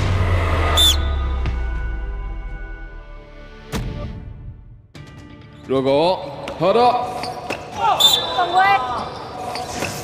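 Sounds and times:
deep bass hit: 0.0s - 4.7s.

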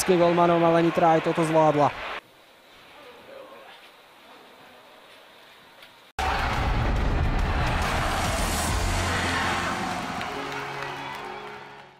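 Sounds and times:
deep boom with whoosh: 6.2s - 9.9s
sustained music chords: 6.5s - 11.9s.

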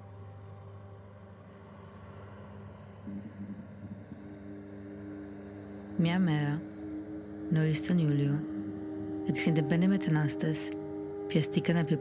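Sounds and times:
distant motorboat engine: 0.0s - 12.0s
wavering low tone: 2.1s - 12.0s.

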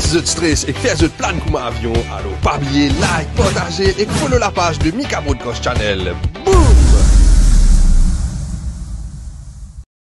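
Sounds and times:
deep noisy rumble: 6.5s - 9.9s.

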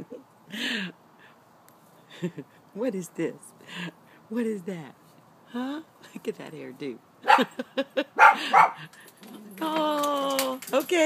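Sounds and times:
dog barking: 7.2s - 7.5s, 8.2s - 8.8s.

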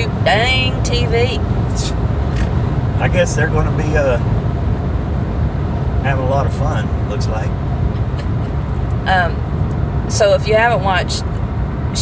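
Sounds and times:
car interior road rumble: 0.0s - 12.0s.

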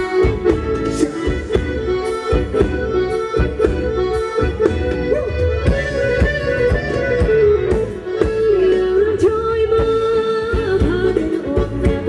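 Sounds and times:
sliding lead melody: 0.0s - 12.0s.

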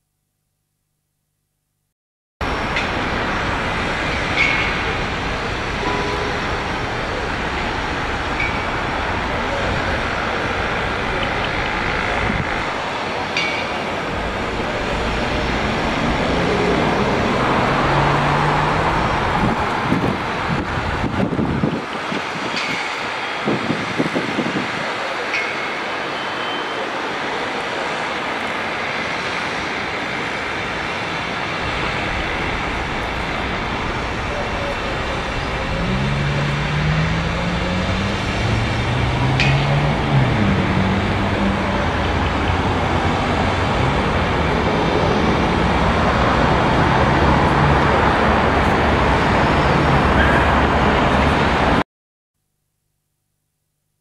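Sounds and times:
city street traffic: 2.4s - 51.8s
faint voices: 29.7s - 37.9s.

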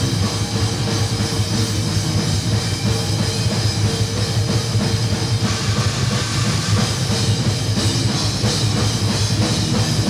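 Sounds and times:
bass guitar: 0.0s - 10.0s
distorted electric guitar: 0.0s - 10.0s
drum kit: 0.0s - 10.0s.

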